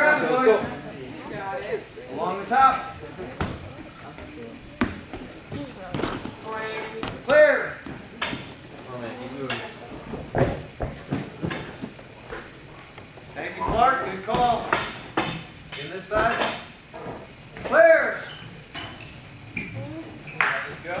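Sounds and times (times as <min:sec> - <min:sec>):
feet thudding on obstacle boxes: 0:03.4 - 0:08.5, 0:13.7 - 0:14.7.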